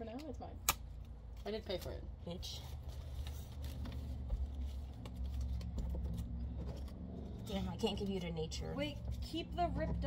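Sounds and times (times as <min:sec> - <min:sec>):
paper cards clicking and rustling: 0:02.8 - 0:07.0.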